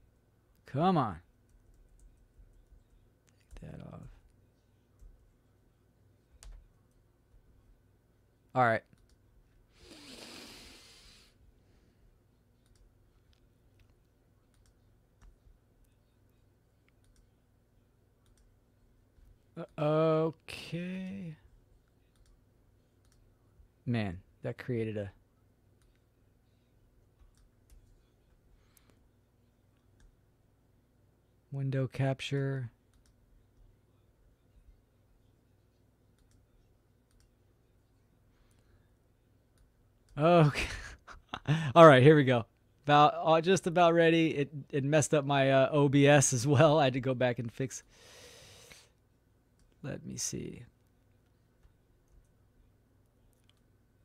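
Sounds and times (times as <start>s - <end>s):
computer mouse clicks: 8.8s - 9.2s, 12.6s - 15.4s, 16.8s - 17.3s, 18.2s - 18.5s, 21.8s - 22.4s, 23.0s - 23.3s, 27.1s - 28.0s, 32.9s - 33.2s, 36.1s - 37.4s
faint computer clicks: 36.1s - 37.4s.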